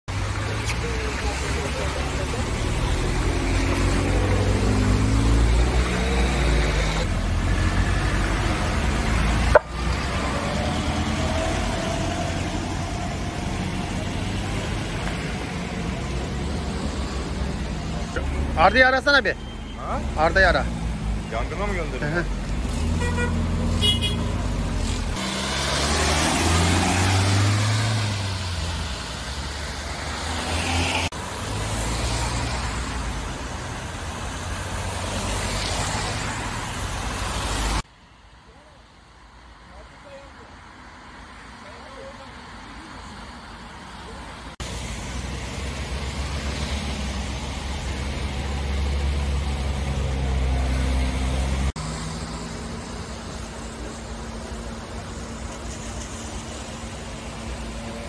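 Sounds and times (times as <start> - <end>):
traffic on wet road: 0.1 - 58.0.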